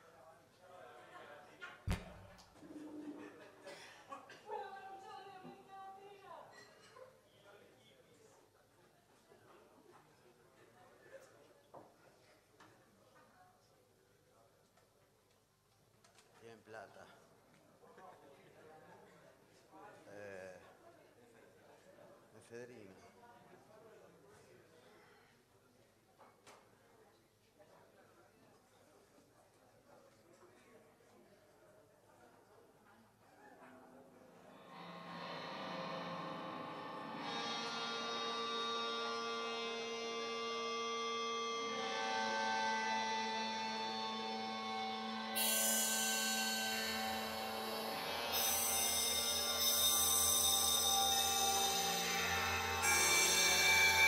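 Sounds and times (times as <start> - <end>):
band playing sustained drone: 34.6 - 54.0.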